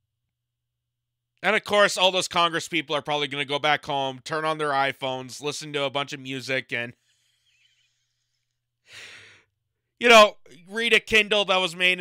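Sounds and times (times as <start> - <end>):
short breath: 7.0 - 9.5.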